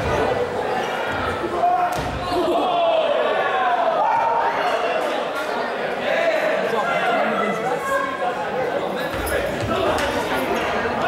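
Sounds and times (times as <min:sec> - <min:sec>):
crowd voices and shouts: 0:00.0 - 0:11.0.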